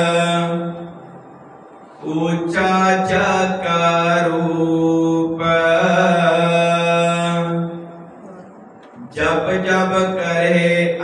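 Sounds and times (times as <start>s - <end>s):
man chanting: 0.0s - 1.0s, 2.0s - 8.0s, 8.9s - 11.0s.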